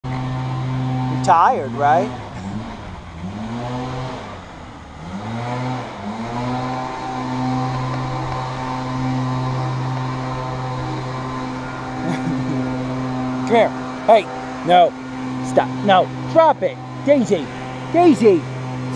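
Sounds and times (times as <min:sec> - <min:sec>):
drone propellers humming: 0:00.0 - 0:18.9.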